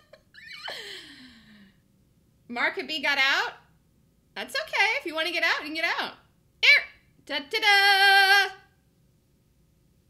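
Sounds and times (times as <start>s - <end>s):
woman's breathy gasp: 0.7s - 1.8s.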